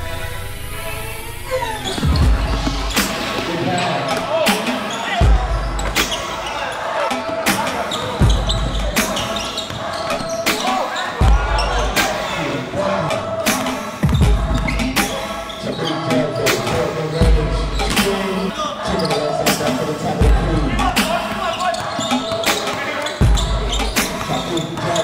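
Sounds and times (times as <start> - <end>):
music: 0.0 - 25.0
spectators' voices: 1.0 - 25.0
basketball bouncing on hardwood court: 1.9 - 3.5.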